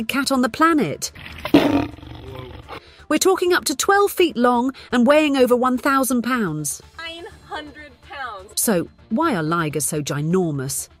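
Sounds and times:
big cat snarling: 1.2s - 2.8s.

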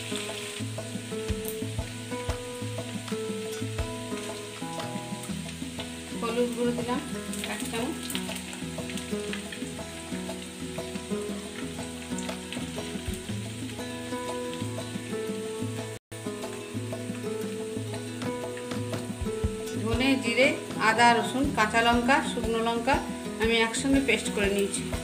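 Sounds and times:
onions sizzling in hot oil: 0.0s - 25.0s.

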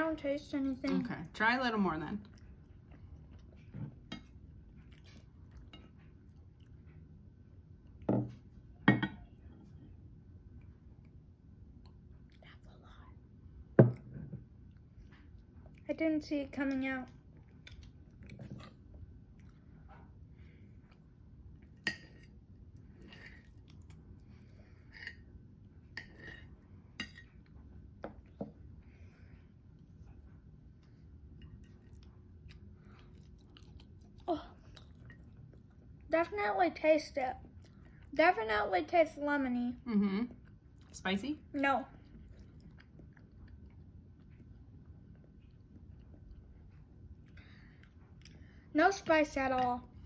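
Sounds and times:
soft chewing: 2.2s - 36.2s, 37.1s - 38.2s, 39.8s - 50.0s.

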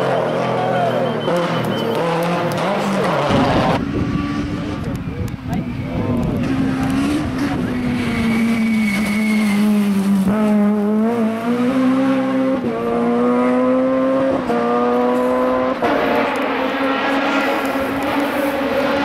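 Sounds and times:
rally car engines at high revs: 0.0s - 19.0s.

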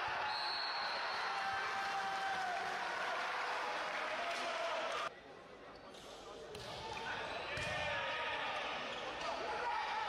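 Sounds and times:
indoor hall noise: 0.0s - 10.0s.

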